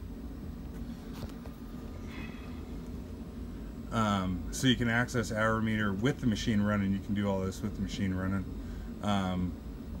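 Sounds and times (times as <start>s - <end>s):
generator engine rumbling: 0.0s - 10.0s.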